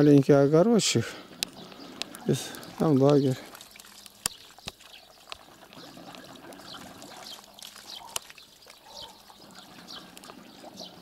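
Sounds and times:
small birds chirping: 0.0s - 11.0s
trickle of running water: 1.3s - 11.0s
sharp clicks: 1.4s - 5.4s.

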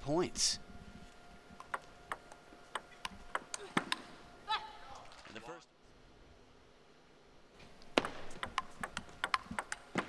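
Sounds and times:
table tennis ball clicks: 1.6s - 4.1s, 7.9s - 10.0s
person shouting: 4.4s - 5.0s.

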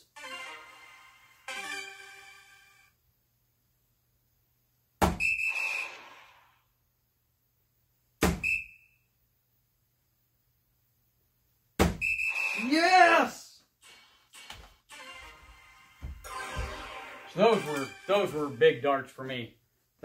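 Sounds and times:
darts striking dartboard: 5.0s - 5.2s, 8.2s - 8.5s, 11.8s - 12.0s
electronic game sound effect: 13.8s - 18.6s.

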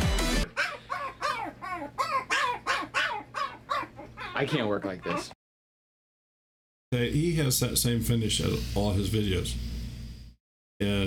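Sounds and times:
small dog yelping: 0.5s - 5.4s.

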